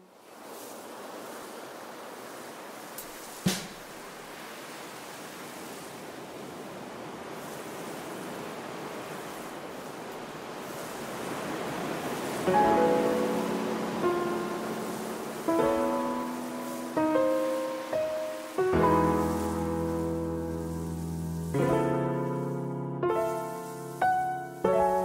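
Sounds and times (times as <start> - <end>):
rain hiss: 0.0 - 25.0
sharp snap: 3.0 - 3.9.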